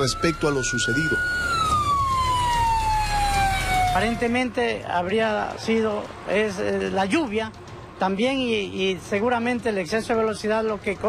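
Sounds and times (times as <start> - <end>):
siren wailing: 0.0 - 4.6.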